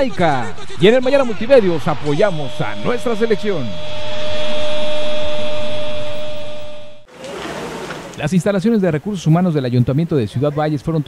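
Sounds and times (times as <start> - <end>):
held synth tone over hiss: 0.0 - 7.1
outdoor background noise: 0.0 - 11.0.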